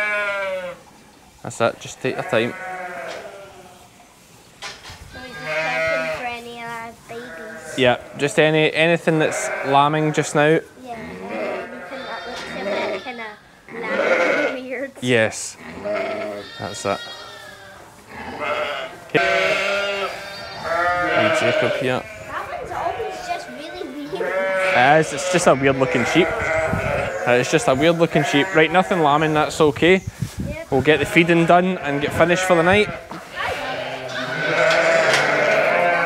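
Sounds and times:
sheep bleating: 0.0 - 0.8, 2.1 - 3.8, 5.2 - 6.3, 7.2 - 8.3, 9.1 - 10.0, 10.9 - 14.7, 15.6 - 29.3, 30.9 - 36.0.

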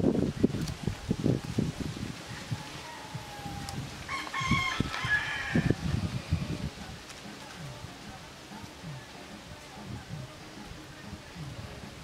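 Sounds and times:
low rustling noise: 0.0 - 12.0
rooster crowing: 2.4 - 5.8.

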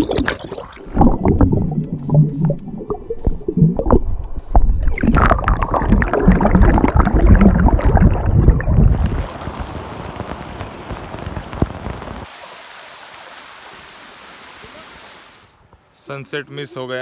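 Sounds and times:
underwater churning and gurgling: 0.0 - 9.3
waterfall hiss: 9.0 - 15.6.

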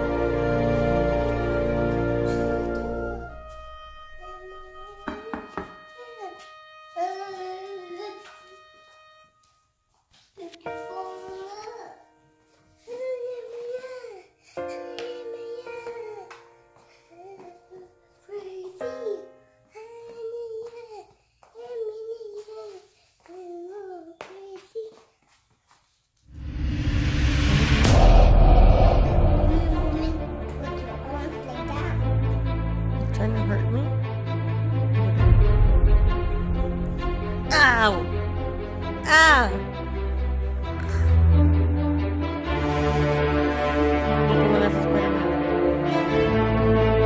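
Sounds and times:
soft instrumental music: 0.0 - 21.0, 29.5 - 47.0
child's wavering vocal sound: 7.0 - 8.3, 12.8 - 16.4, 19.8 - 25.0
girl singing: 10.4 - 12.0, 12.8 - 14.3, 14.9 - 16.4, 17.1 - 25.0.

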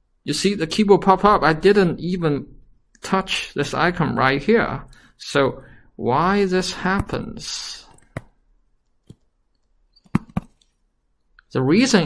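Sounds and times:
stylus tapping on glass screen: 10.0 - 10.6.

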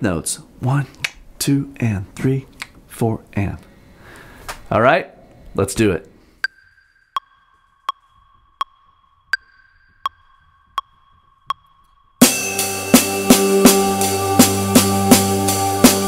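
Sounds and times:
metronome clicks: 6.4 - 12.3
ride cymbal: 12.2 - 16.0.

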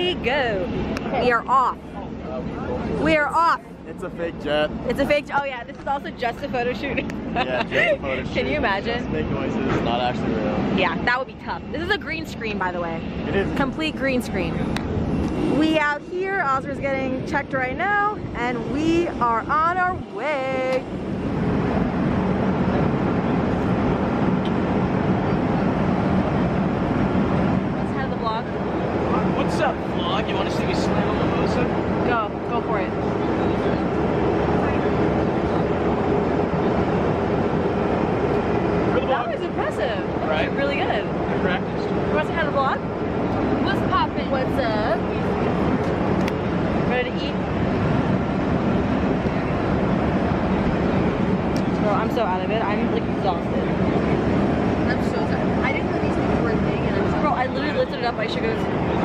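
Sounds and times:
indistinct voices talking: 0.0 - 59.0
jet engine roar in cabin: 0.0 - 59.0.

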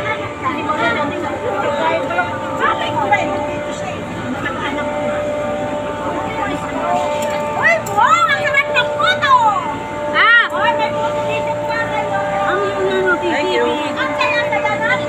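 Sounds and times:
people talking and calling out: 0.0 - 15.0
steady background hum: 0.0 - 15.0.

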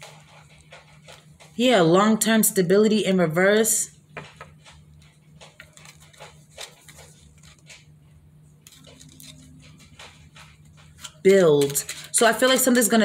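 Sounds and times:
cards clicking and tapping: 4.1 - 8.0, 8.6 - 12.9.

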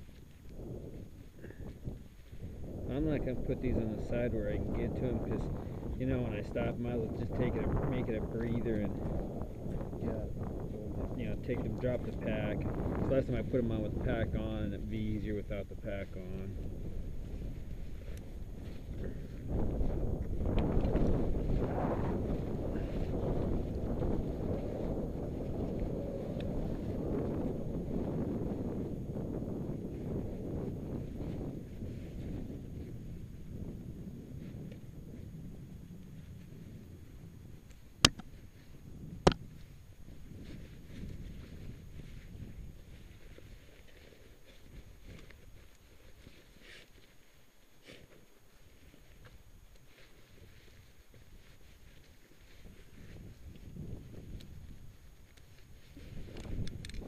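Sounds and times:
sharp clicks: 38.0 - 38.3.

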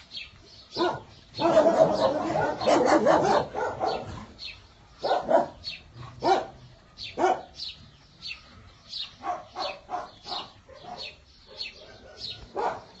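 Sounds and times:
dogs barking: 0.7 - 7.7, 9.1 - 13.0.

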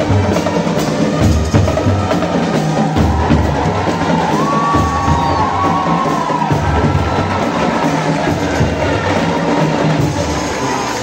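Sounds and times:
crowd cheering and shouting: 0.0 - 11.0
marching band drums and brass: 0.0 - 11.0.

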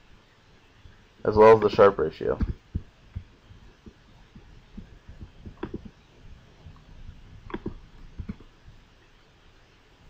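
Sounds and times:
low background hum: 0.0 - 10.0
soft low thumps: 2.3 - 9.1.

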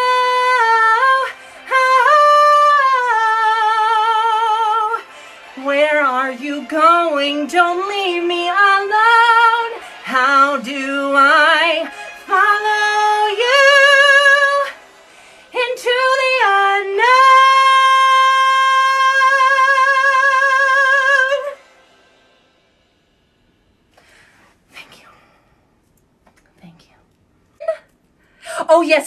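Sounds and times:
woman singing with vibrato: 0.0 - 14.9, 15.5 - 21.7.

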